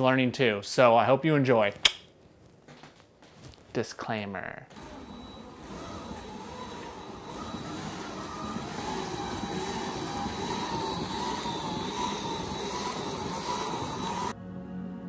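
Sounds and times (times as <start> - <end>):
power drill whining: 4.7 - 14.4.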